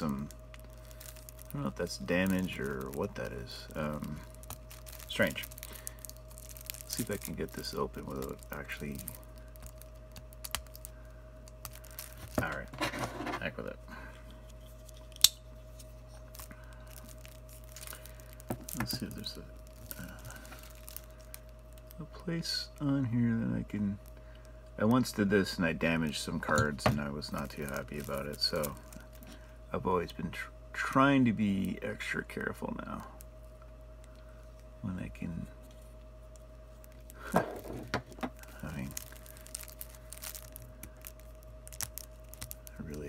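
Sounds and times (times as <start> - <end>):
plastic wrap crinkling: 0.0 - 13.7, 14.3 - 22.9, 24.8 - 29.5, 35.6 - 43.0
steady low hum: 0.0 - 43.0.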